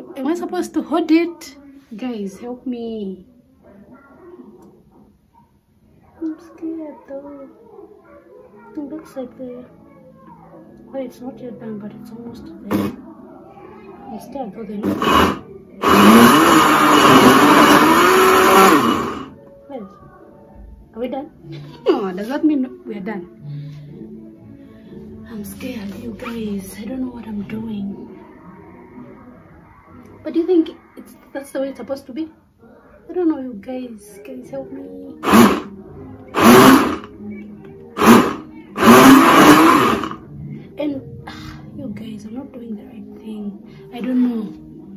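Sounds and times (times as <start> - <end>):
electric blender running: 14.8 - 19.3, 35.2 - 35.7, 36.3 - 37.1, 38.0 - 40.2.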